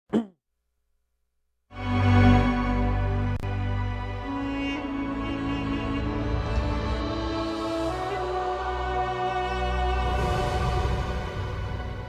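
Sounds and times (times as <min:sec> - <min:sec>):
slow intro music: 0:01.7 - 0:12.0.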